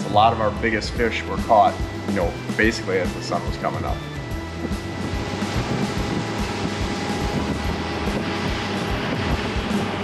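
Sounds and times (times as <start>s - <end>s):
boat engine drone: 0.0s - 10.0s
rushing wind: 4.2s - 10.0s.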